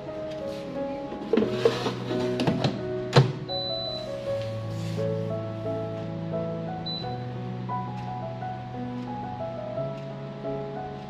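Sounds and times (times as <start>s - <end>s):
background music: 0.0s - 11.0s
air fryer basket clicking and knocking: 1.1s - 3.6s.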